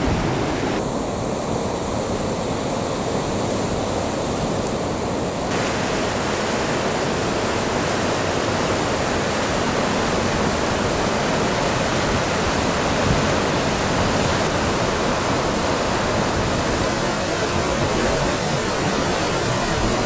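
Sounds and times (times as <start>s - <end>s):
ocean surf roaring: 0.0s - 20.0s.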